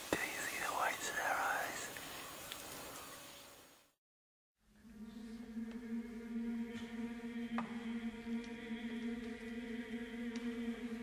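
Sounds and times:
person whispering: 0.0 - 2.0.

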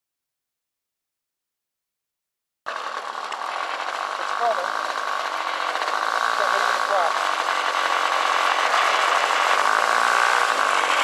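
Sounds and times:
model airplane engine running: 2.7 - 11.0.

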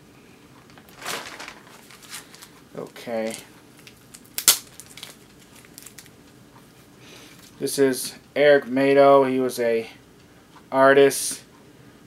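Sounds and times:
paper crinkling: 0.7 - 6.1.

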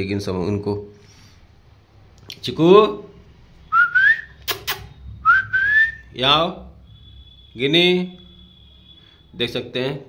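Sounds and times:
man whistling: 3.7 - 6.1
sharp clicks: 4.4 - 4.9.

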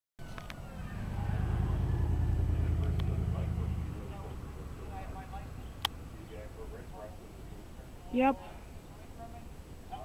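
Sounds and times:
vehicle engine rumbling: 0.2 - 8.0.

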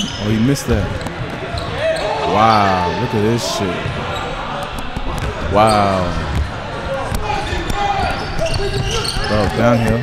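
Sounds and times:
players' voices: 0.0 - 10.0
basketball bouncing on court: 6.2 - 9.3.

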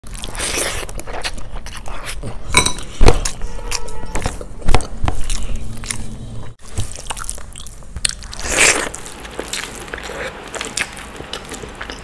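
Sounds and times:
eating by hand: 0.0 - 12.0.

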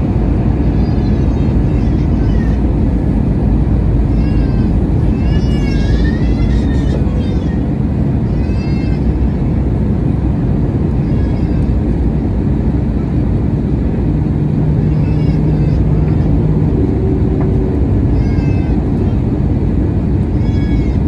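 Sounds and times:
aircraft cabin roar: 0.0 - 21.0.

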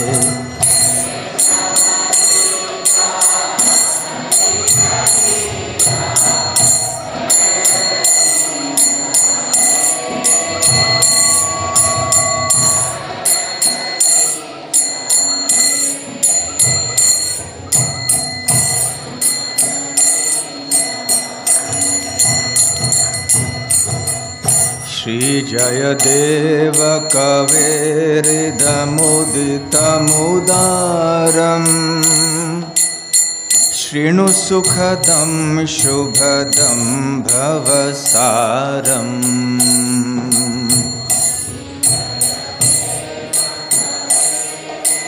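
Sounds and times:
accompanying instruments: 0.0 - 45.0
hand cymbals ringing: 0.0 - 45.0.

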